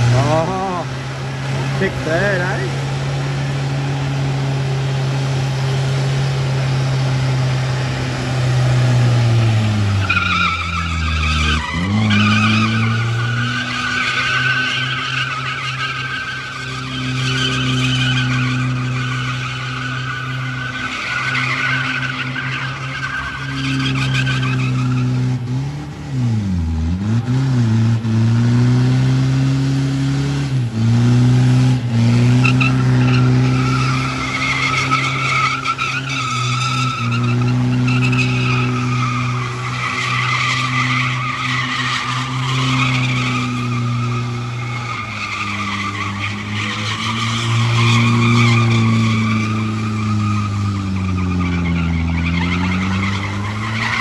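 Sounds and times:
tyres spinning and squealing: 0:00.0 - 0:26.3, 0:31.7 - 0:54.0.

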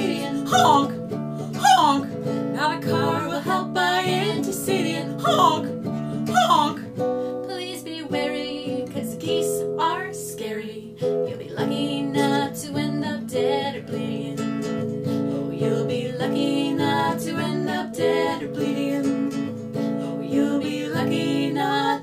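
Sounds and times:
acoustic guitar strumming: 0:00.0 - 0:22.0
women singing: 0:00.0 - 0:22.0.

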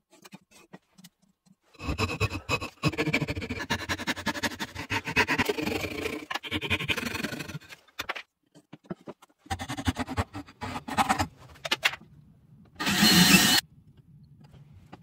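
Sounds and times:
hand saw cutting wood: 0:01.8 - 0:06.4.

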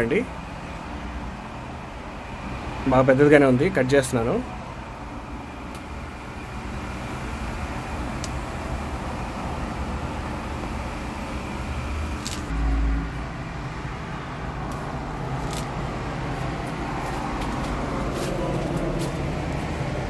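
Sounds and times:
road traffic hum: 0:00.0 - 0:20.0.

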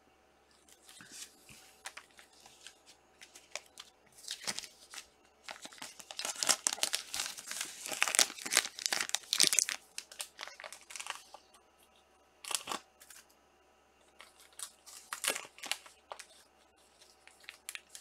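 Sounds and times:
plastic sleeve crinkling: 0:00.7 - 0:11.5, 0:14.1 - 0:18.0.

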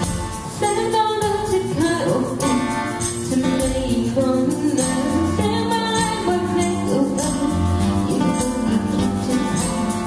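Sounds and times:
strummed acoustic guitar: 0:00.0 - 0:10.0
woman singing into a microphone: 0:00.5 - 0:10.0.

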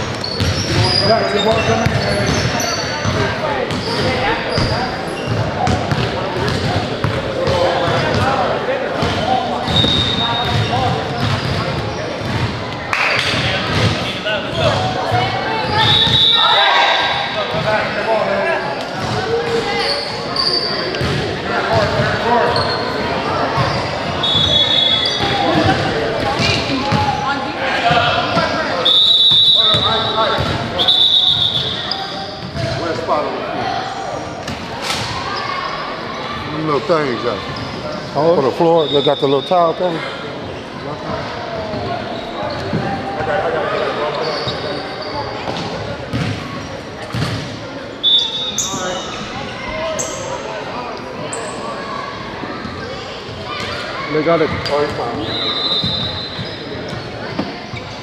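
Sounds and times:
shoe squeaks: 0:00.0 - 0:06.6, 0:09.0 - 0:12.4, 0:15.6 - 0:16.8, 0:18.5 - 0:21.2, 0:22.4 - 0:27.3, 0:28.4 - 0:33.0, 0:37.4 - 0:41.1, 0:41.8 - 0:42.8, 0:44.0 - 0:47.3, 0:47.9 - 0:50.5, 0:53.5 - 0:58.0
crowd talking in hall: 0:00.0 - 0:58.0
basketball bouncing on court: 0:00.2 - 0:00.9, 0:01.5 - 0:08.3, 0:09.0 - 0:12.6, 0:45.5 - 0:46.4, 0:47.1 - 0:47.5.

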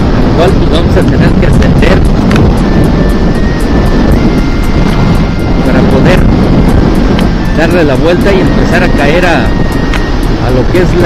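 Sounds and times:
wind rush on microphone: 0:00.0 - 0:11.0.

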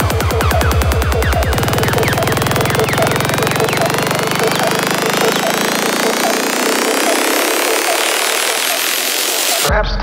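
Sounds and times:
low bass tone: 0:00.0 - 0:08.8
repeating synth blip: 0:00.0 - 0:09.7
rising high synth sweeps: 0:00.0 - 0:09.7.

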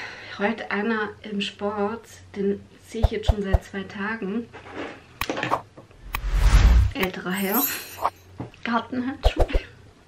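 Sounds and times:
woman speaking: 0:00.6 - 0:04.3, 0:07.0 - 0:08.0.

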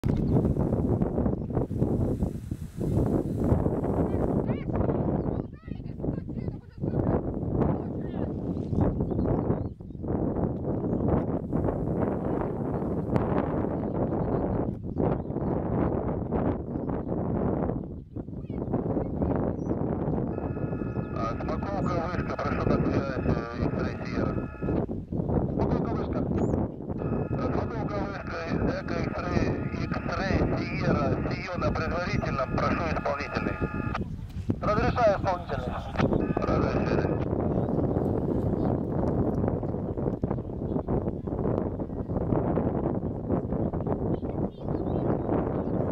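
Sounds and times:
wind buffeting microphone: 0:00.0 - 0:45.9
steady high tone: 0:20.4 - 0:24.8, 0:27.0 - 0:34.0.

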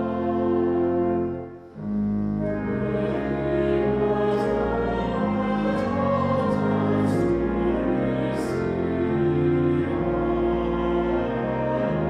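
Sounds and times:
choir singing: 0:00.0 - 0:12.0
organ notes: 0:00.0 - 0:12.0.

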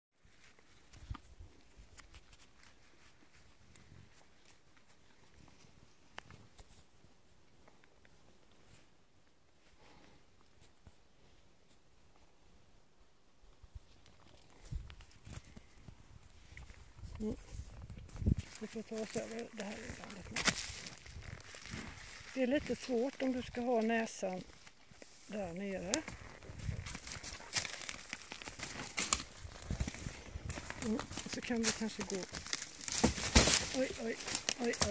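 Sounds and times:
footsteps on dry twigs: 0:17.6 - 0:34.9.

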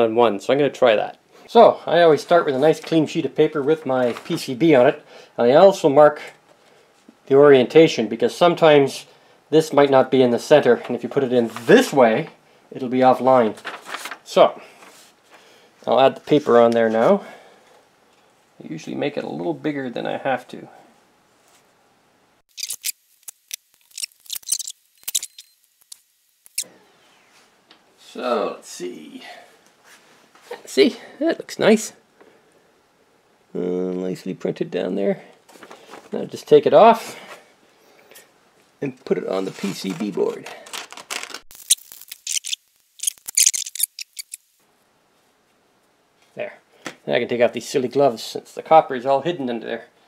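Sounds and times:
paper rustling: 0:04.0 - 0:04.4, 0:13.4 - 0:15.4, 0:35.5 - 0:36.2, 0:39.4 - 0:44.4.

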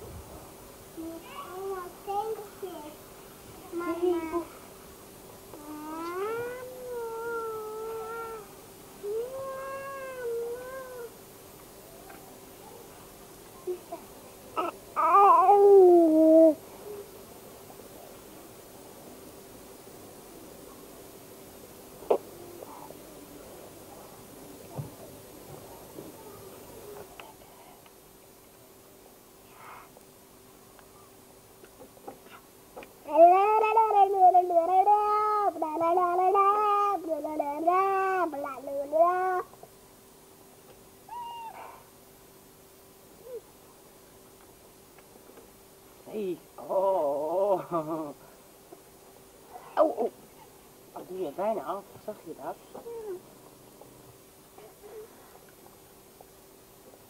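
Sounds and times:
child vocalising sing-song: 0:05.5 - 0:11.1, 0:33.0 - 0:39.6
baby whiny cry: 0:41.1 - 0:41.8.

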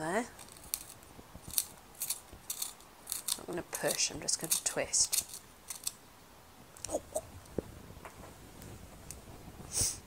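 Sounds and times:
pencil being sharpened: 0:00.5 - 0:05.9.

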